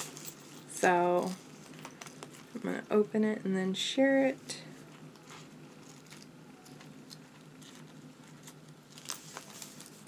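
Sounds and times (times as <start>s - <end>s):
steady low hum: 0.0s - 10.0s
paper rustling: 5.2s - 10.0s.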